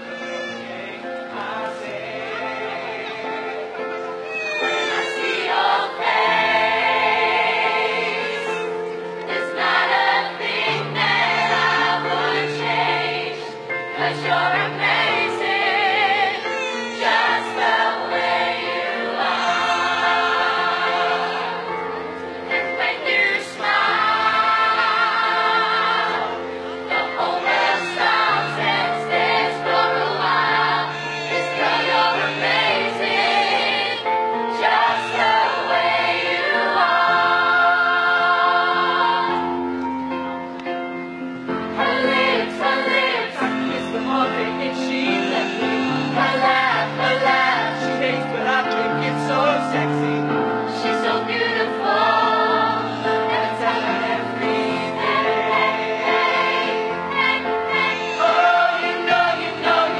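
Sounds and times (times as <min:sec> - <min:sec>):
mixed choir singing: 0:00.0 - 0:40.3, 0:41.4 - 0:59.9.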